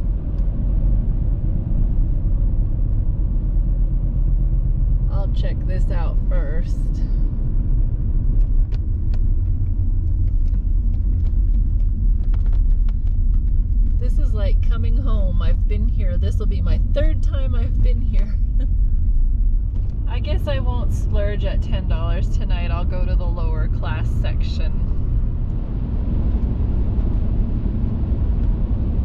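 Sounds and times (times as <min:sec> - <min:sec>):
car road and engine rumble: 0:00.0 - 0:29.0.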